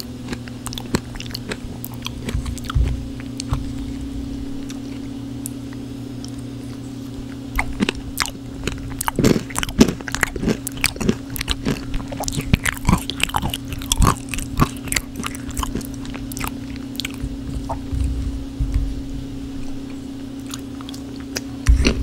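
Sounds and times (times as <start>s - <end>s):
chewing crunchy food: 0.0s - 18.6s, 19.8s - 22.0s
steady low hum: 0.0s - 22.0s.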